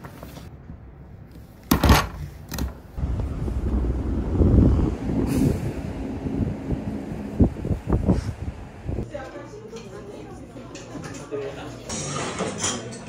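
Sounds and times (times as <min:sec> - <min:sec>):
low rumble of street traffic: 0:00.0 - 0:09.6.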